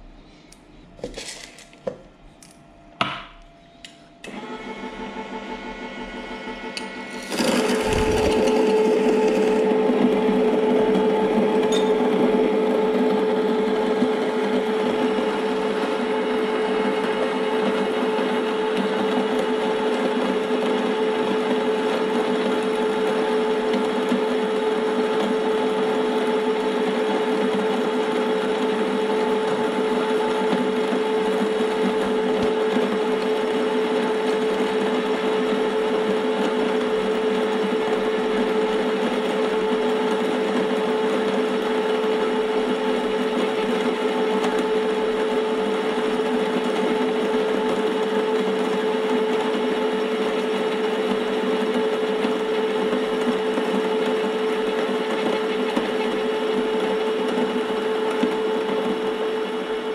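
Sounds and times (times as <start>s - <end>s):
coffee grinder motor hum: 4.2s - 59.9s.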